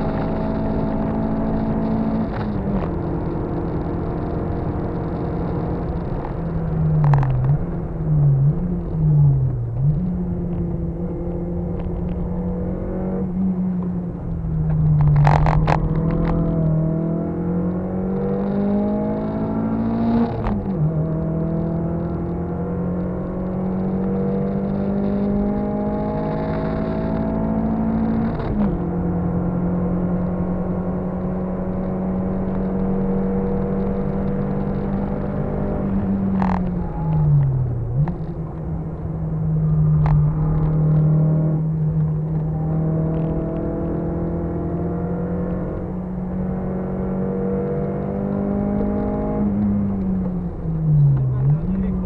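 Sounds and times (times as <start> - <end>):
car engine accelerating: 0.0 - 52.0.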